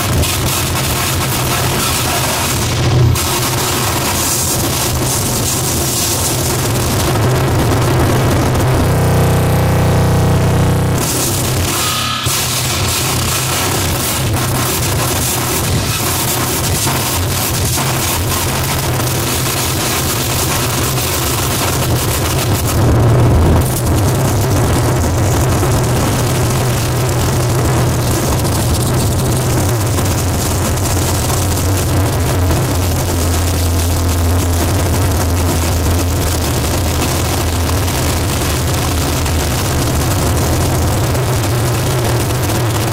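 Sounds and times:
harsh distortion noise: 0:00.0 - 0:42.9
heavy low rumble: 0:00.0 - 0:42.9.

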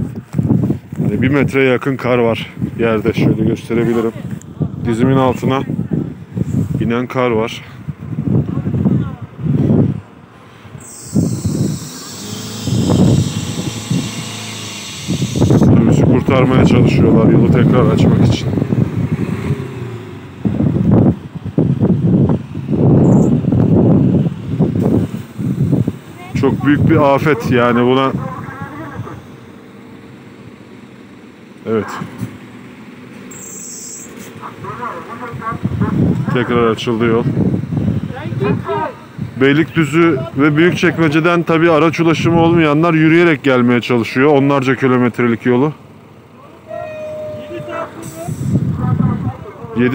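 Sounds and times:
road traffic: 0:00.0 - 0:49.9
vehicle engines humming: 0:00.0 - 0:49.9.

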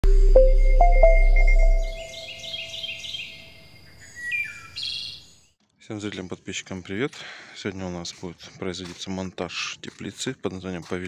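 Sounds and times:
held music tone: 0:00.0 - 0:02.8.

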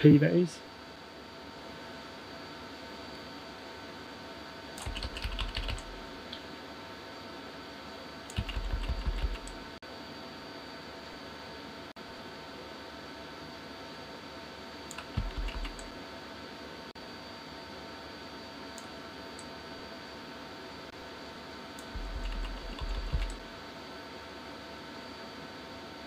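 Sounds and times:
faint room hum: 0:00.0 - 0:26.0
keyboard keys tapping: 0:04.8 - 0:06.0, 0:08.3 - 0:09.6, 0:14.9 - 0:15.9, 0:21.8 - 0:23.4.

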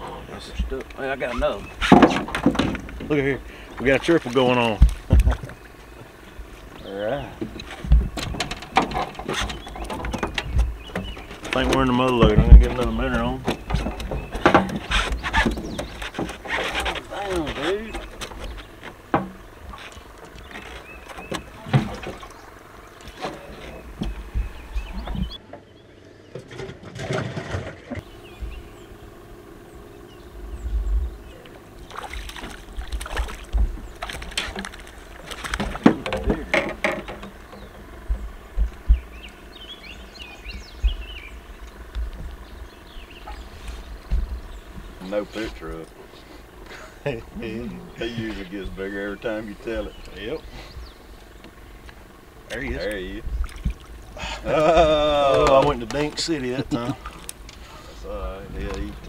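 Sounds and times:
fishing gear knocks and clicks: 0:32.2 - 0:38.9.

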